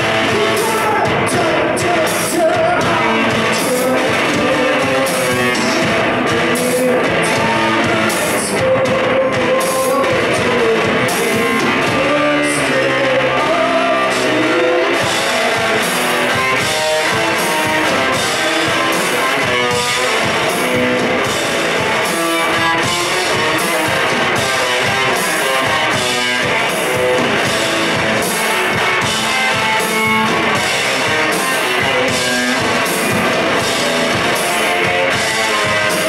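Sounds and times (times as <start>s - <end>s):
garage rock band playing live: 0.0s - 36.0s.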